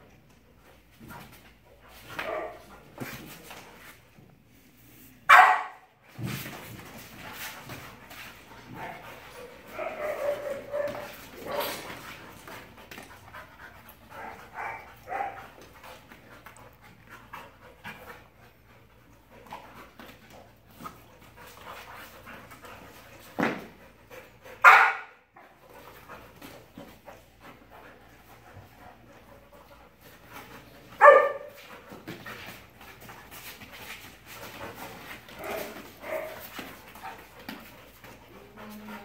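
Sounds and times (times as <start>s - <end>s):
dog barks: 2.2s - 2.6s, 5.3s - 5.9s, 24.6s - 25.1s, 31.0s - 31.5s
dogs panting: 6.8s - 24.7s, 25.3s - 39.0s.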